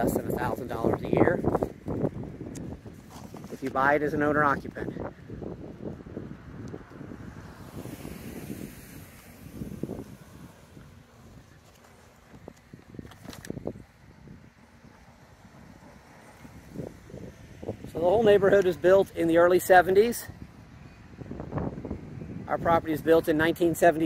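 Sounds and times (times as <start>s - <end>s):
wind buffeting a microphone: 0.0s - 24.0s.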